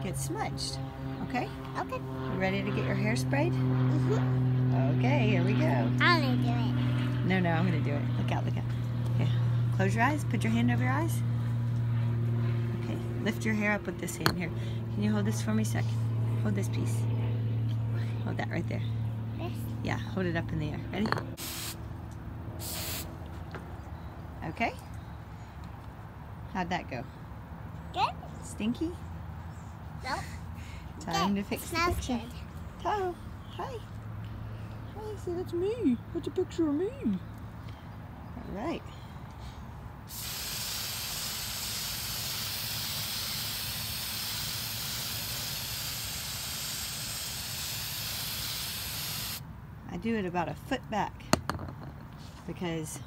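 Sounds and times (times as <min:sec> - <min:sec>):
aerosol can spraying: 0:21.4 - 0:21.8, 0:22.6 - 0:23.1, 0:40.1 - 0:49.4.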